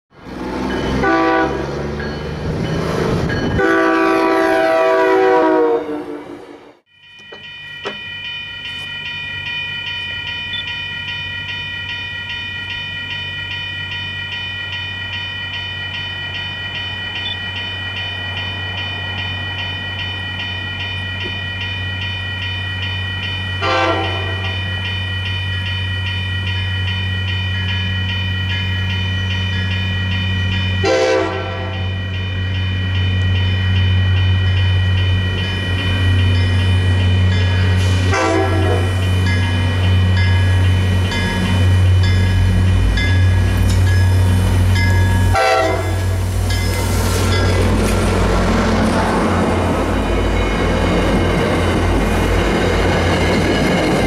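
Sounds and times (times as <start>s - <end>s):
crossing bells ringing: 0.2s - 5.7s, 6.8s - 54.0s
locomotive horn: 0.9s - 1.7s, 3.5s - 6.8s, 23.6s - 24.6s, 30.8s - 32.0s, 38.0s - 39.2s, 45.2s - 46.2s.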